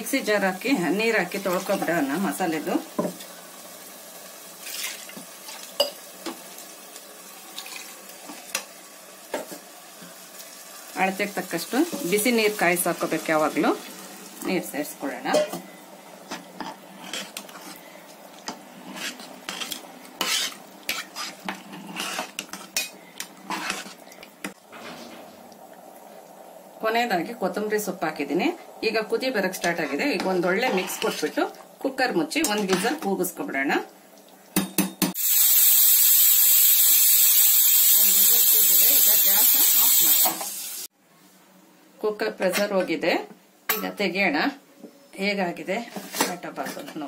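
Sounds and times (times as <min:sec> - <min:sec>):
faint steady hiss: 0:00.0 - 0:47.0
metal spoon stirring in pot: 0:15.3 - 0:24.6, 0:29.5 - 0:31.6, 0:32.3 - 0:33.1
spoon scraping and knocking pot: 0:18.5 - 0:24.0.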